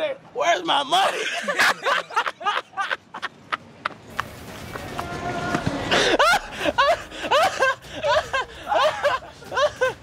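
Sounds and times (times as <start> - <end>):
city street noise: 0.0 - 10.0
loud laughter: 1.0 - 3.6, 5.9 - 10.0
man running on pavement: 3.9 - 6.4.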